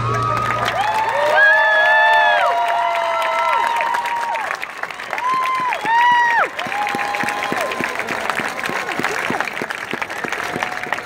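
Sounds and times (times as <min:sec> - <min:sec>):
crowd clapping and cheering: 0:00.0 - 0:11.0
high held whoops: 0:00.1 - 0:09.0.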